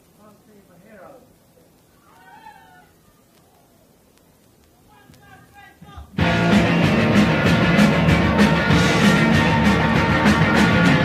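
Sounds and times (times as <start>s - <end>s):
faint high-pitched cry: 2.0s - 4.0s.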